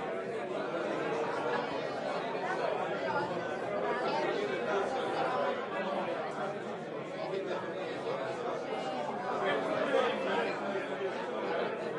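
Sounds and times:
party chatter: 0.0s - 11.9s.

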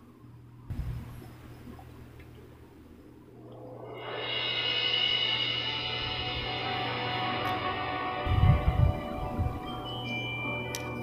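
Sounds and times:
orchestral music: 3.8s - 11.0s.

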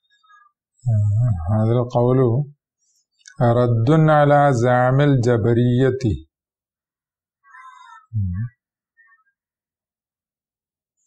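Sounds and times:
man humming: 0.8s - 1.6s, 8.1s - 8.6s.

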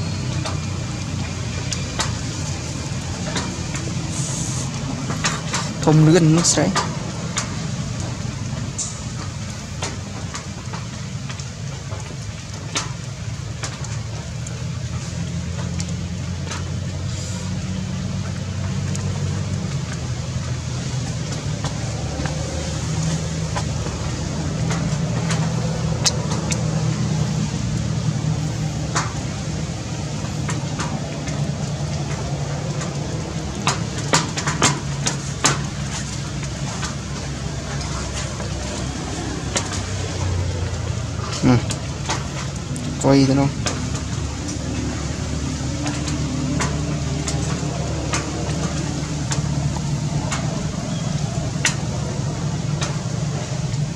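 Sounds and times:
low motor-like rumble: 0.0s - 53.9s.

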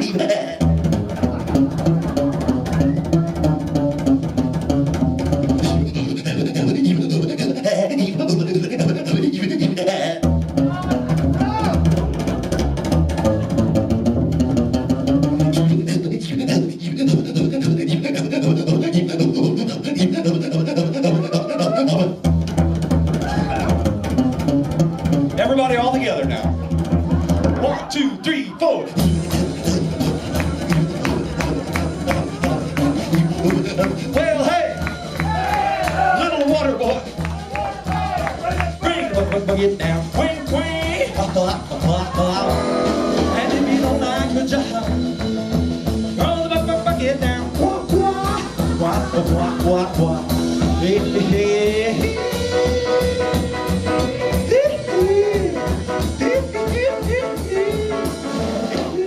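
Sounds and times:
slapped double bass: 0.0s - 28.0s, 28.9s - 59.0s.

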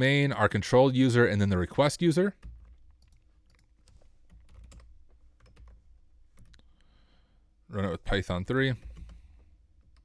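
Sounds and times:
faint keyboard typing: 2.3s - 6.9s, 8.6s - 10.0s.

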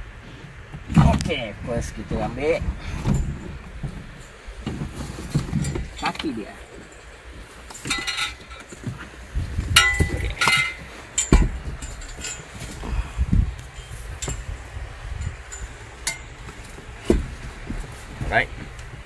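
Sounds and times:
dull handling thumps: 0.5s - 19.0s
sharp metal knocks: 7.7s - 9.0s, 9.7s - 12.5s, 15.2s - 17.8s
metal table frame clanking: 7.8s - 8.8s, 9.8s - 12.5s.

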